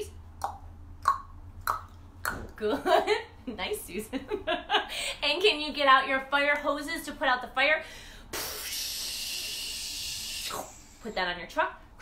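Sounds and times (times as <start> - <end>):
person making hissing shhh sound: 8.3 - 11.2.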